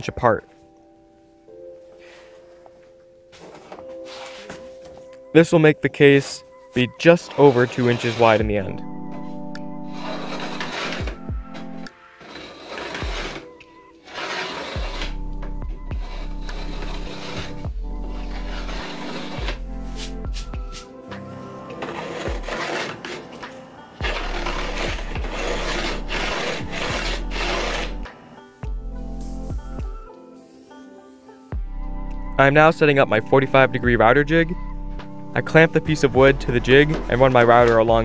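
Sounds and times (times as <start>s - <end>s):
background music with chords: 0.0s - 38.0s
pin scratching along wood: 9.9s - 11.2s, 12.2s - 15.2s, 15.9s - 20.2s, 21.7s - 28.1s.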